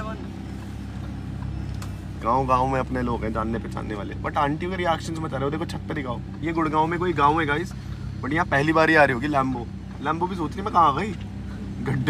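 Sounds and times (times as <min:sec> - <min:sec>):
car engine running low hum: 0:00.0 - 0:12.0.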